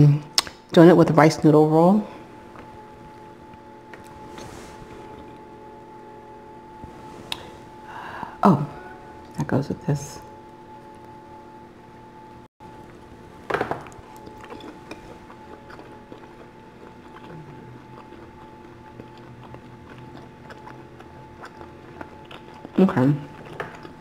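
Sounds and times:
chewing crispy food: 13.8 - 24.0.

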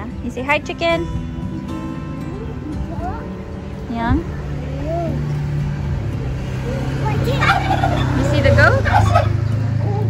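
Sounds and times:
fowl calling: 7.3 - 9.5.

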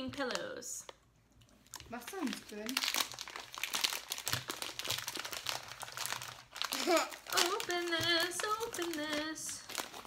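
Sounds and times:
plastic snack bag crinkling: 0.0 - 10.0.

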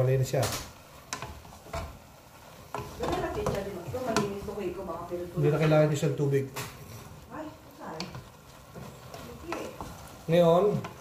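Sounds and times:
wooden spoon stirring noodles in pot: 0.0 - 11.0
spoon knocking on pot: 2.7 - 4.5.

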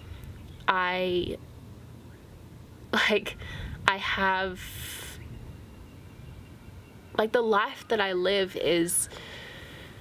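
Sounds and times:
faint low outdoor rumble: 0.0 - 10.0
person breathing: 3.4 - 3.8, 9.1 - 10.0.

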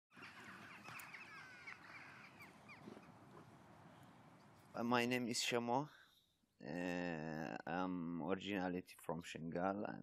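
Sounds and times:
small birds chirping: 0.1 - 4.8.

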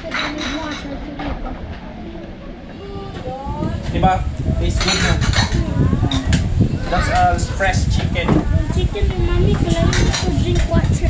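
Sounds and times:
dishes and cutlery clinking: 0.0 - 1.2, 4.7 - 6.4, 9.6 - 10.7
indistinct voices: 0.0 - 11.0.

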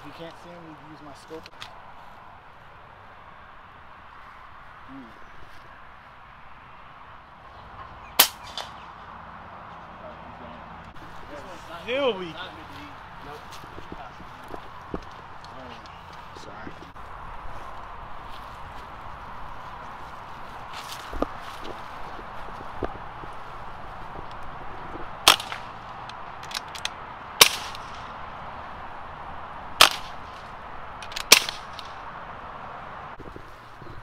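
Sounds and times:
air rifle firing: 8.2 - 8.8, 25.2 - 25.8, 27.4 - 28.1, 29.8 - 30.3, 31.1 - 31.9.

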